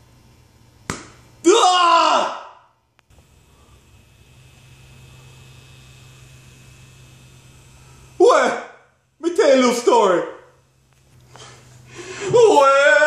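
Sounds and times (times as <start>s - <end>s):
faint low hum: 2.8s - 13.0s.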